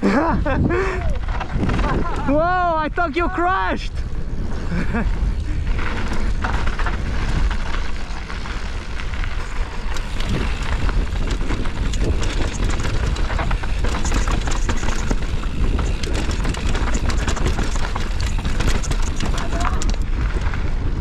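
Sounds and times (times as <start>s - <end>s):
bike clicking and rattling: 0.0s - 21.0s
wind buffeting microphone: 0.3s - 3.1s, 3.8s - 21.0s
tyres rolling over gravel: 4.2s - 21.0s.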